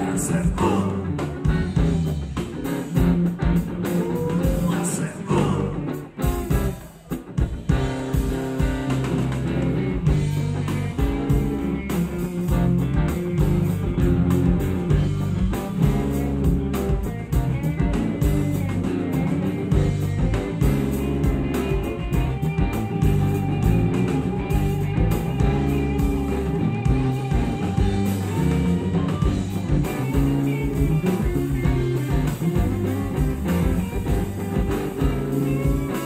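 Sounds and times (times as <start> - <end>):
rock band playing: 0.0 - 36.0.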